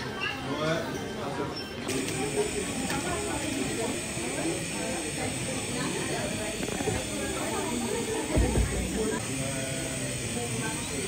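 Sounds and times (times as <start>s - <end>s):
people talking: 0.0s - 11.0s
gas torch hissing: 1.9s - 11.0s.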